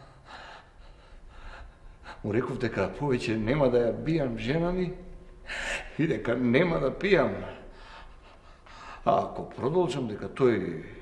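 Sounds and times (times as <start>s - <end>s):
man breathing: 0.0s - 2.3s, 5.4s - 6.0s, 7.6s - 9.1s
man speaking: 2.2s - 5.1s, 5.9s - 7.7s, 9.0s - 11.0s.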